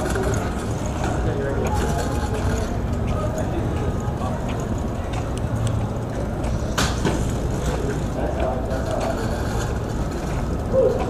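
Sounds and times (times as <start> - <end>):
faint voices: 0.0 - 11.0
scooter wheels rolling on paving: 0.0 - 11.0.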